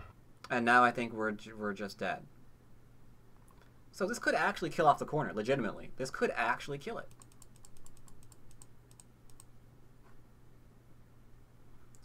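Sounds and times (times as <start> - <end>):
faint low hum: 0.0 - 12.0
computer keys clicking: 7.1 - 9.5.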